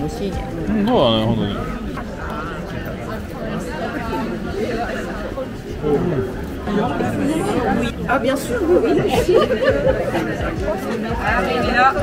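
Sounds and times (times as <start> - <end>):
chatter of many overlapping voices: 0.0 - 12.0.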